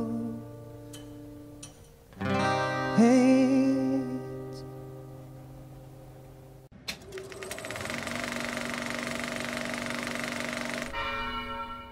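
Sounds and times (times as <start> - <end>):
mechanical rattle: 6.9 - 11.0
bell strike: 10.9 - 11.9.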